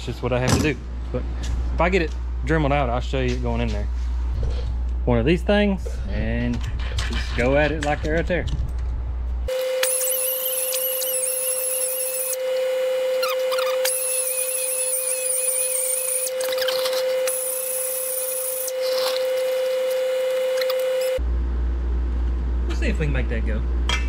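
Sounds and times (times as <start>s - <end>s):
pneumatic die grinder grinding metal: 9.5s - 21.2s.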